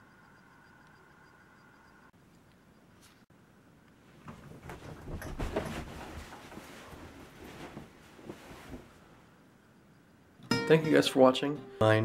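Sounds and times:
blankets rustling: 4.0 - 9.4.

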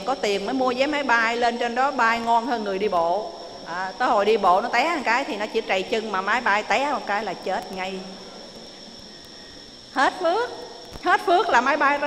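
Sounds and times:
steady high-pitched whine: 0.0 - 12.0.

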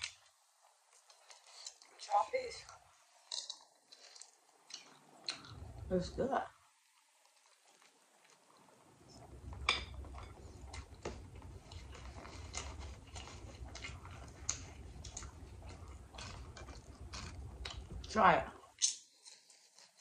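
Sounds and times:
close chewing of crusty bread: 0.0 - 5.9, 6.8 - 20.0
low rumble: 5.4 - 6.4, 9.0 - 18.7.

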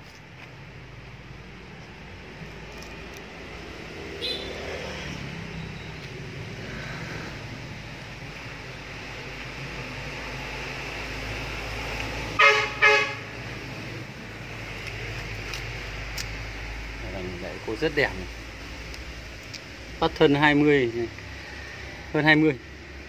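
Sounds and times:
vehicle horn toots: 4.2 - 4.7, 12.4 - 13.3.

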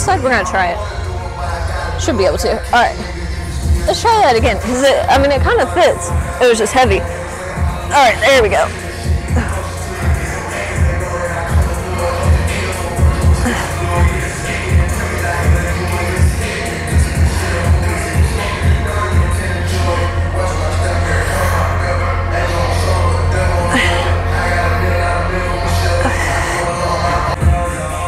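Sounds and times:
music with heavy bass beat: 0.0 - 28.0.

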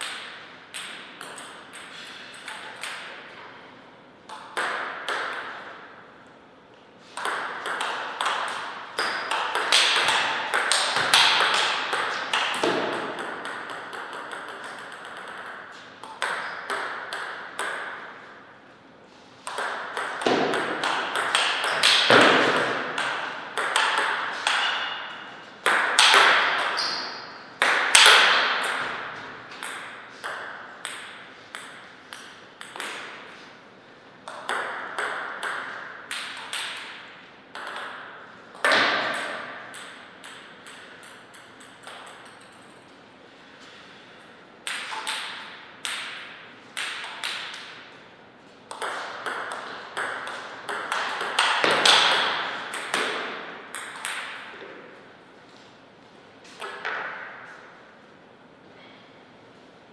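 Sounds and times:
table tennis ball clicking: 7.2 - 18.0, 38.6 - 42.7.

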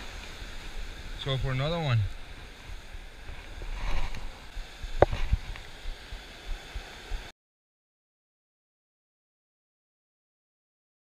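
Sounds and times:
surf breaking: 0.0 - 7.3
wind buffeting microphone: 0.0 - 7.3.

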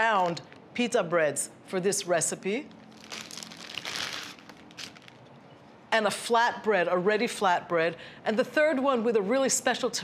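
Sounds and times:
plastic bag crinkling: 2.7 - 5.4.

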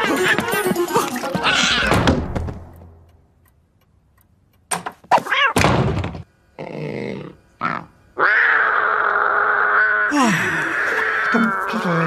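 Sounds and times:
cartoon thunk: 1.8 - 2.7, 5.6 - 6.2.

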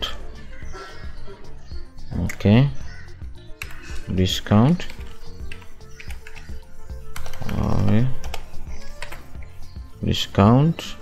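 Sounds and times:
computer keyboard typing: 3.6 - 4.0, 4.8 - 9.5.

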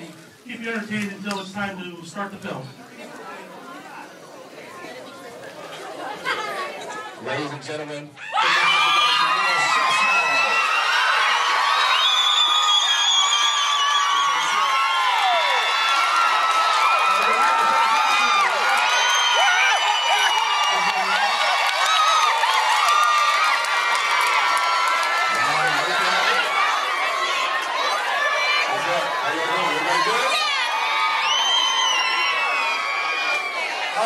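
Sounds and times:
audience cheering and screaming: 8.2 - 34.0.

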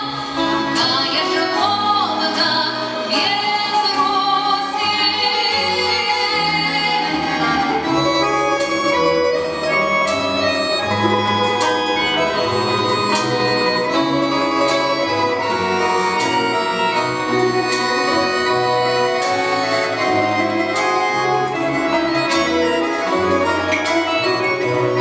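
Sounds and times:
accordion chords and melody: 0.0 - 25.0
plucked guitars and gusli: 0.0 - 25.0.

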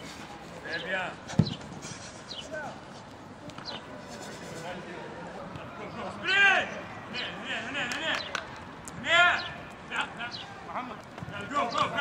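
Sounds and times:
players' voices: 0.0 - 12.0
sharp thump: 1.3 - 1.6.

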